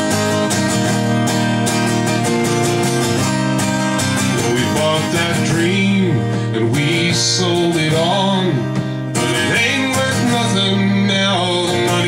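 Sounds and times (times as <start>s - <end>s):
acoustic guitar strumming: 0.0s - 12.0s
person singing: 4.3s - 12.0s.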